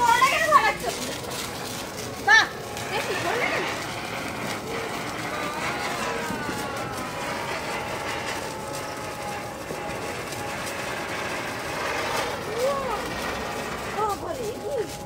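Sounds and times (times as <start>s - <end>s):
firework spraying hiss: 0.0s - 15.0s.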